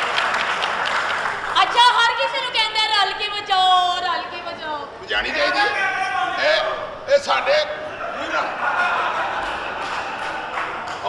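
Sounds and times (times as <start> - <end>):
audience applause: 0.0 - 1.8, 8.0 - 11.0.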